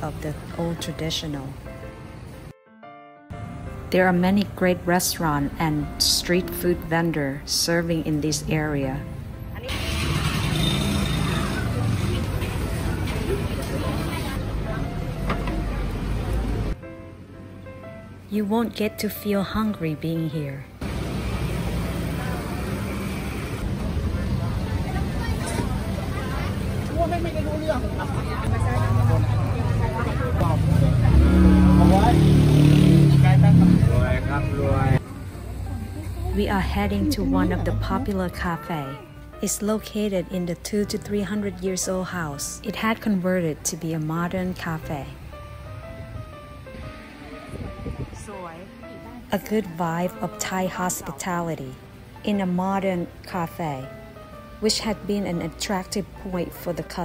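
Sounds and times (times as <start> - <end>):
road traffic rumble: 0.0 - 2.5, 3.3 - 57.0
people chattering: 8.2 - 16.8, 21.3 - 45.3, 46.8 - 53.8
vehicle engine passing: 9.4 - 16.8, 20.8 - 38.8.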